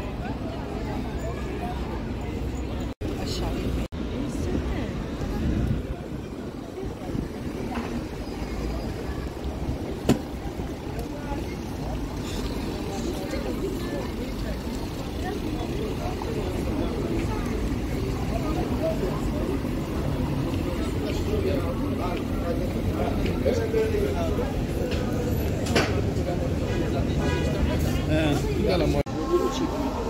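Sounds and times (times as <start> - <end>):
chatter of passers-by: 0.0 - 30.0
traffic rumble: 0.0 - 30.0.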